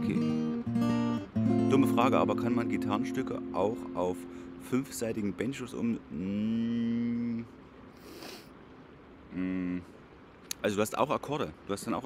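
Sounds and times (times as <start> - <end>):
man humming hmm: 6.0 - 7.5, 9.3 - 10.0.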